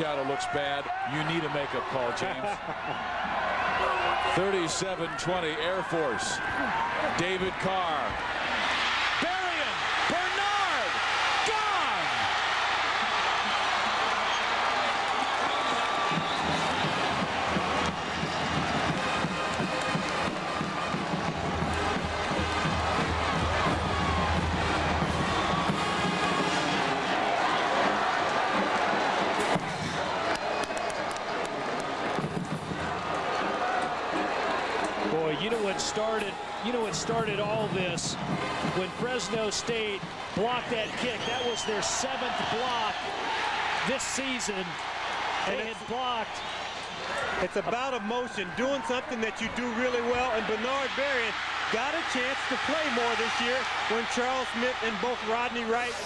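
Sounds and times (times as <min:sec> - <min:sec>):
stadium crowd cheering: 0:00.0 - 0:56.0.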